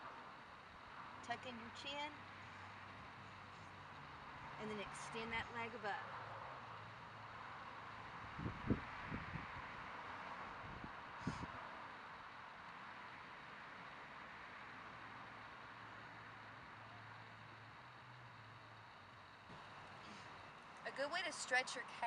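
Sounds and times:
steady outdoor hiss: 0.0 - 22.0.

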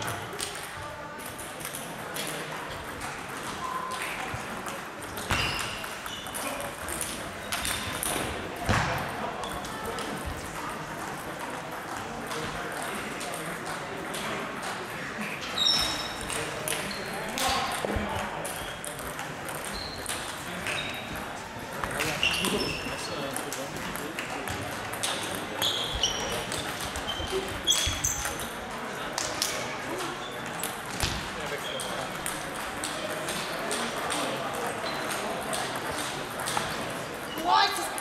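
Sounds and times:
table tennis balls clicking: 0.0 - 8.6, 9.2 - 38.0
murmur of voices: 0.0 - 38.0.

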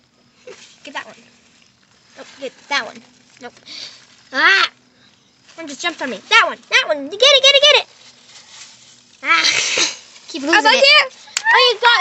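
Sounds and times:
girl shrieking: 11.4 - 12.0.

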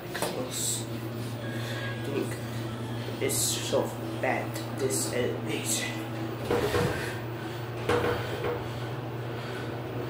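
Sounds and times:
elevator hum: 0.0 - 10.0.

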